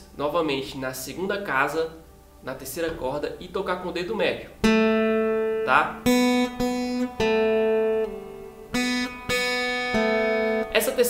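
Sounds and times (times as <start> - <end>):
fingerpicked acoustic guitar: 3.9 - 11.0.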